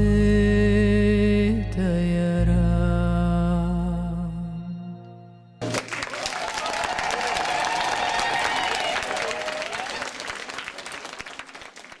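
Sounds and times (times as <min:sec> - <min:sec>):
audience applauding: 0:05.6 - 0:12.0
spectator long shout: 0:06.2 - 0:10.2.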